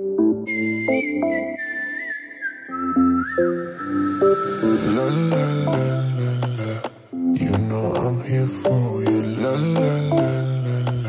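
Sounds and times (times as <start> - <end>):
high single-note melody: 3.8 - 6.1.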